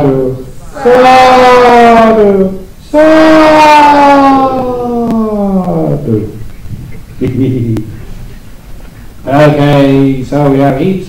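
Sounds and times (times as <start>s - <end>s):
person chanting a held word: 0.0s - 6.2s.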